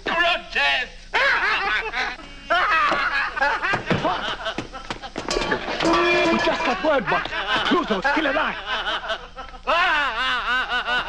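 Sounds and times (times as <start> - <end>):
men laughing uncontrollably: 1.2 - 11.0.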